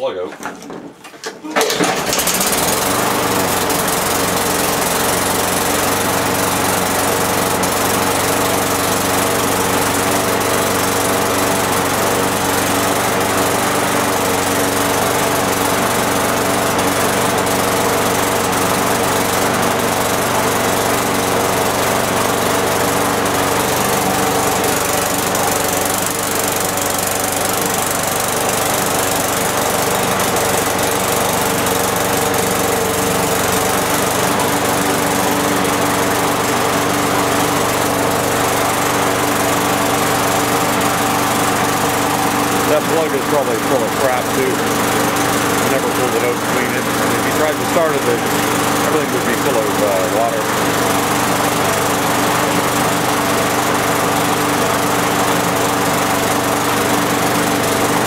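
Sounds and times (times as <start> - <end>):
push mower engine running: 0.4 - 58.0.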